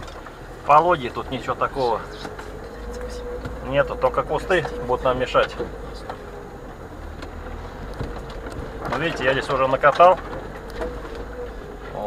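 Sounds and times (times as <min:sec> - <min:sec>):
car engine low hum: 0:00.0 - 0:12.0.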